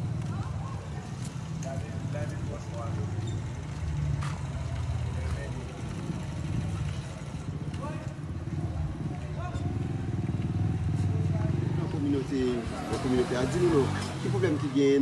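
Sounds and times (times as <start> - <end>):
engine rumble: 0.0 - 15.0
faint indistinct voices: 0.0 - 15.0.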